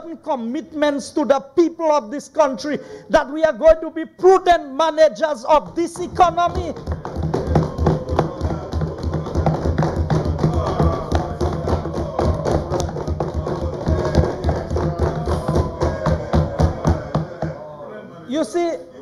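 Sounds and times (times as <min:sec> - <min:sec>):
hands banging on wooden desks: 0:05.6 - 0:17.6.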